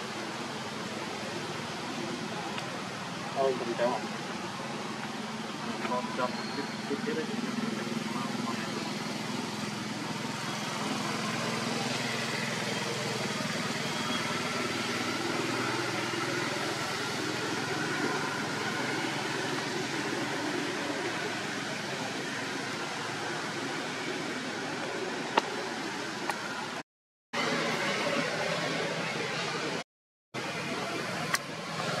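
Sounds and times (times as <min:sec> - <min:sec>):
distant indistinct voices: 0:00.0 - 0:26.8, 0:30.4 - 0:32.0.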